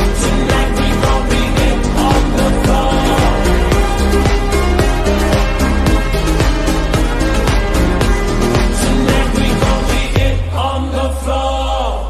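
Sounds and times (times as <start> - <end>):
low bass: 0.0 - 12.0
slowed-down dance-pop track: 0.0 - 12.0.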